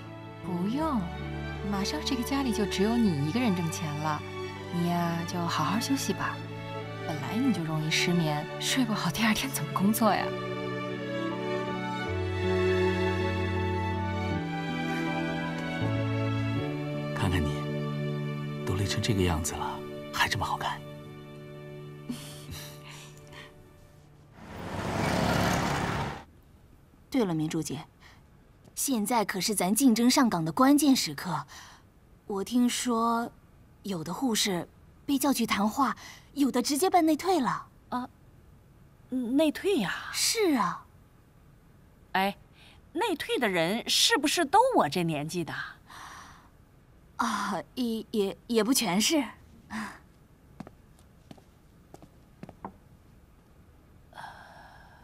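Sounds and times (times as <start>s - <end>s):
road traffic noise: 24.4s - 26.3s
vehicle passing close by: 24.4s - 26.3s.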